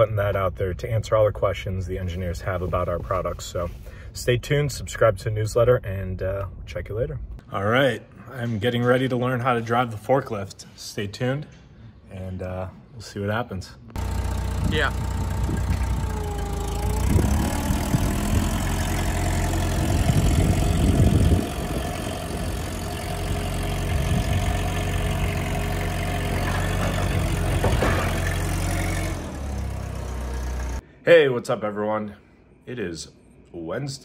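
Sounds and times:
forklift engine running: 14.0 - 30.8.

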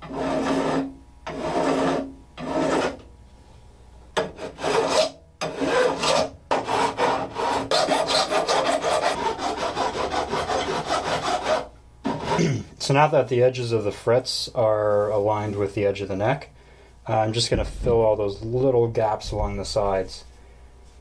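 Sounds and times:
file rasping on metal frets: 0.0 - 3.0, 4.2 - 12.4.

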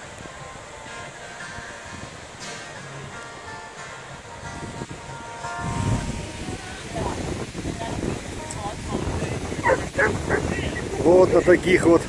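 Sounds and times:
surf: 0.0 - 12.0
wind on microphone: 4.3 - 12.0
dog barking: 9.6 - 10.8.

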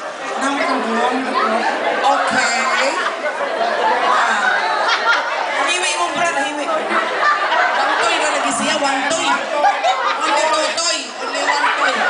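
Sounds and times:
voices talking and chattering: 0.0 - 12.0.

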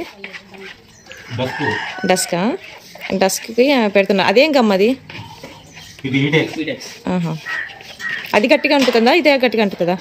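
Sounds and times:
rooster crowing: 1.0 - 2.6.

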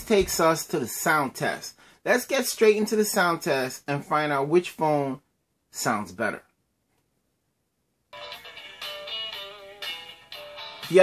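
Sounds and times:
music from phone loudspeaker: 8.2 - 11.0.

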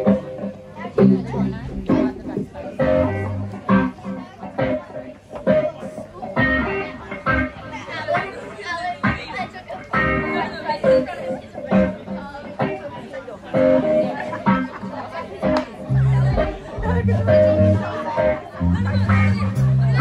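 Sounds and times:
bass: 0.0 - 4.8, 6.4 - 8.0, 15.4 - 20.0
electric guitar strumming: 0.0 - 9.3
drums: 0.0 - 20.0.

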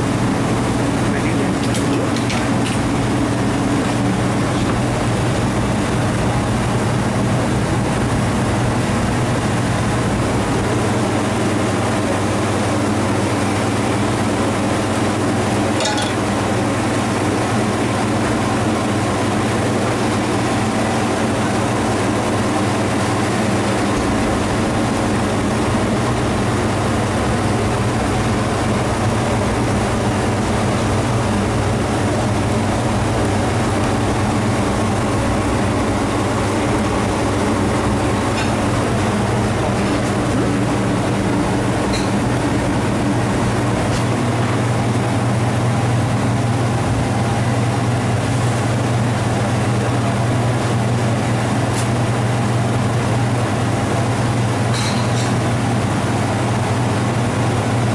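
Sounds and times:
kitchen fans droning: 0.0 - 57.9.

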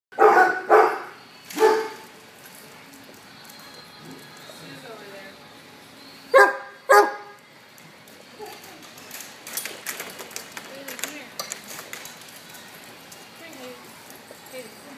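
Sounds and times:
dog barking: 0.1 - 2.0, 6.4 - 7.4
dogs playing scuffles and clicks: 7.8 - 14.9.

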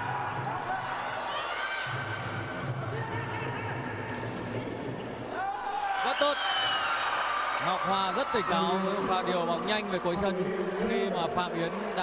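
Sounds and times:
crowd voices and shouts: 0.0 - 12.0.

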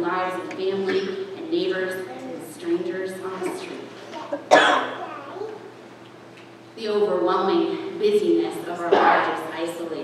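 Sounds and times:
person coughing: 3.5 - 5.0.

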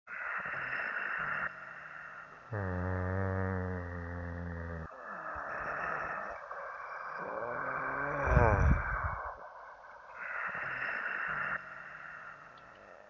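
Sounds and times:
man humming low: 2.5 - 4.9, 7.2 - 9.3.

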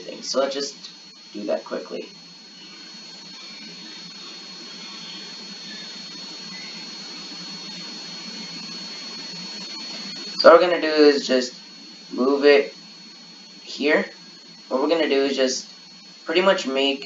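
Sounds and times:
faint high-pitched whine: 0.0 - 17.0
steady background hiss: 0.0 - 17.0.

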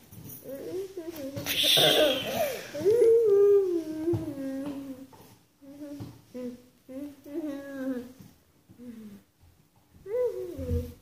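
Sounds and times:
girl humming: 0.5 - 5.0.

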